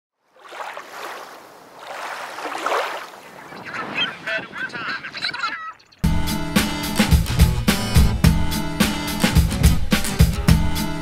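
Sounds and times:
surf-like noise: 0.4 - 5.6
gulls crying: 2.3 - 6.7.

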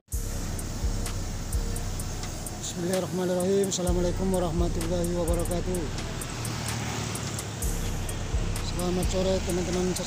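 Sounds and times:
minibus engine approaching: 0.1 - 10.0
road traffic rumble: 0.1 - 10.0.

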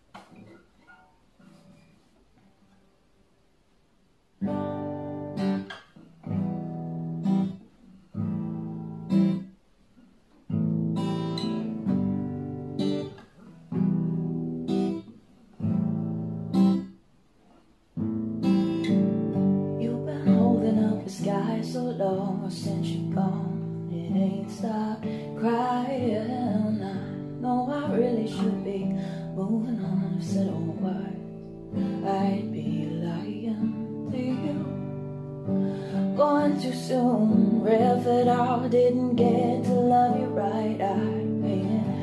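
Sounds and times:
acoustic guitar strumming chords: 4.4 - 7.6, 10.5 - 17.0, 18.0 - 42.0.

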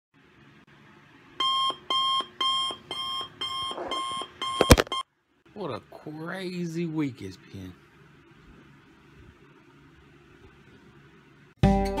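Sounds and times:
alarm clock beeping: 1.4 - 5.0.

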